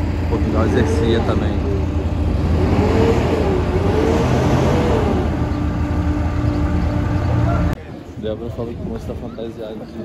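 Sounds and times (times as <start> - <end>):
diesel engine running: 0.0 - 8.8.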